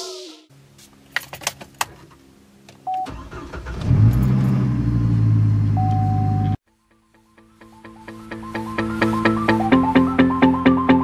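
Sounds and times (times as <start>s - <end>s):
car engine cranking and idling: 1.1s - 6.6s
car warning chime: 5.8s - 6.6s.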